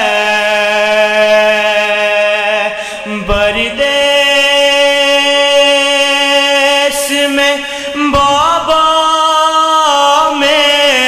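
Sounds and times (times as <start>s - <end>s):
man chanting into microphone: 0.0s - 11.0s.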